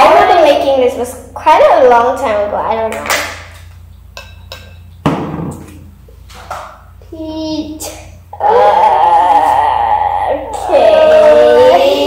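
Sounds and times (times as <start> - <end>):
plastic tub knocking: 5.0 - 5.7.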